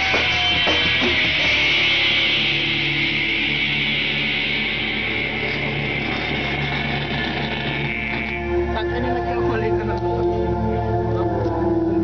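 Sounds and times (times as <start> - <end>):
drums: 0.0 - 10.4
distorted electric guitars: 0.0 - 12.0.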